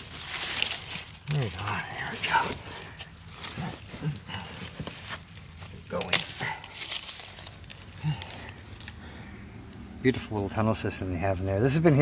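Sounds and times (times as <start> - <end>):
leaves and twigs crackling: 0.0 - 9.3.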